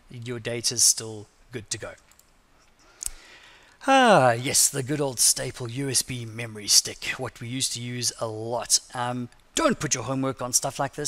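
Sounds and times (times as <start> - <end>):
man speaking: 0.1 - 2.0, 3.8 - 11.0.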